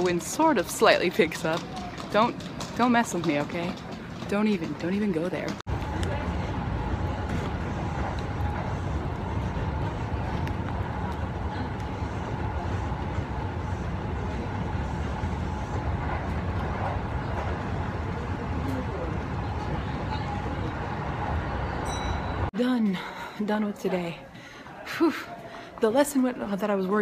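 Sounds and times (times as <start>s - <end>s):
train low rumble: 0.0s - 22.5s.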